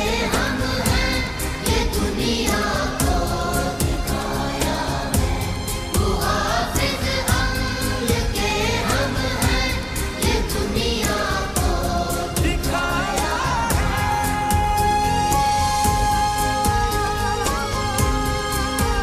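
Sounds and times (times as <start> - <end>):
backing track with steady beat: 0.0 - 19.0
person singing: 0.0 - 19.0.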